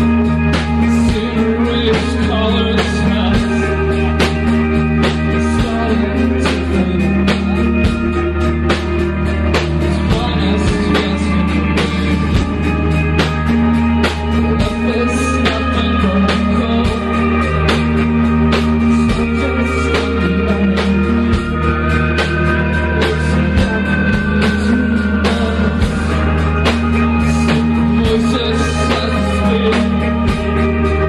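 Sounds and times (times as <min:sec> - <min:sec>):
bass line: 0:00.0 - 0:31.0
electric guitars: 0:00.0 - 0:31.0.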